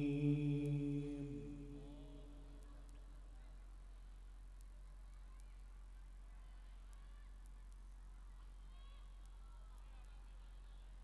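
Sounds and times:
low electrical hum: 0.0s - 9.6s.

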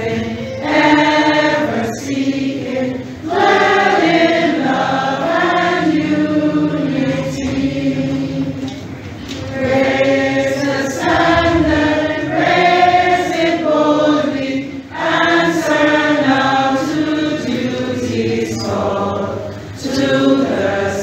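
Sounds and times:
group of voices singing: 0.0s - 21.0s.

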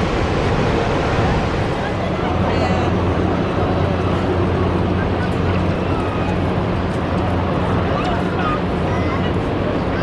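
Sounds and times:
waterfall roaring: 0.0s - 8.9s
faint voices of people: 1.8s - 10.0s.

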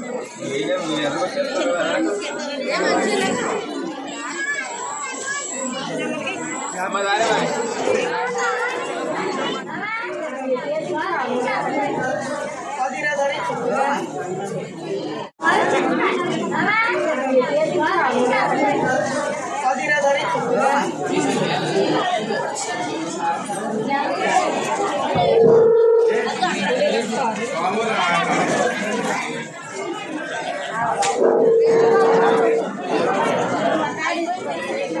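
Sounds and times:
crowd talking in hall: 0.0s - 35.0s
people chattering: 0.0s - 35.0s
steady single-pitched tone: 25.2s - 26.3s, 31.2s - 32.8s.

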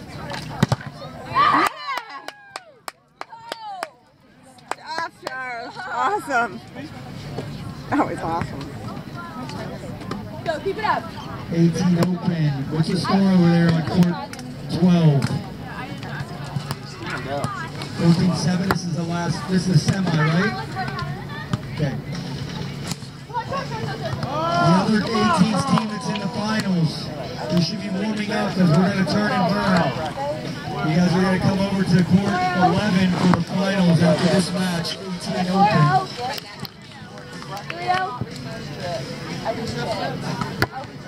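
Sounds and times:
background chatter: 0.0s - 41.0s
people cheering: 1.2s - 4.0s, 24.2s - 26.7s.

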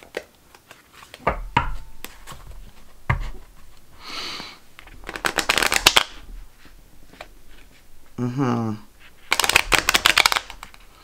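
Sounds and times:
cards riffle-shuffled: 4.8s - 7.8s, 9.0s - 11.0s.

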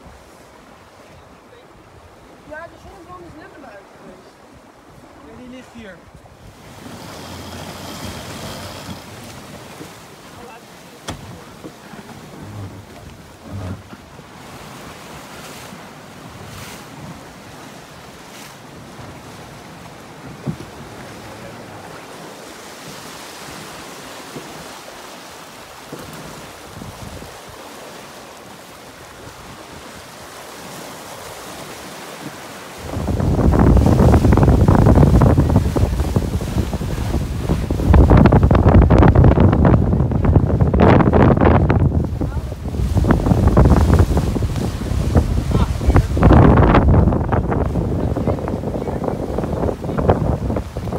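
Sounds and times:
water rushing past hull: 0.0s - 50.9s
wind buffeting microphone: 4.9s - 10.5s, 25.9s - 27.6s, 29.0s - 50.9s.

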